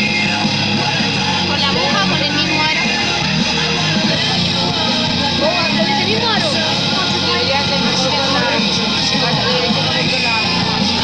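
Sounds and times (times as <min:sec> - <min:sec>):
background song with vocals: 0:00.0 - 0:11.0.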